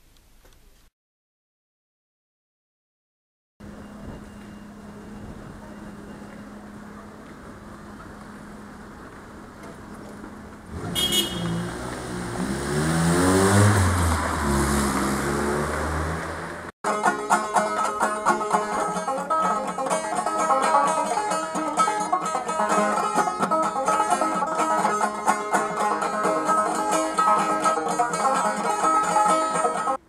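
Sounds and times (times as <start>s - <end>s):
vehicle driving past: 7.9s - 16.7s
banjo plucked: 16.8s - 30.0s.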